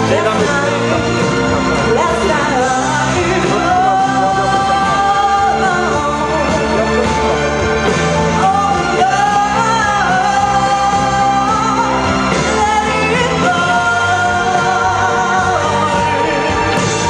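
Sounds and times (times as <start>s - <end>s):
woman singing: 0.0s - 7.5s, 8.2s - 17.0s
instrumental accompaniment: 0.0s - 17.0s.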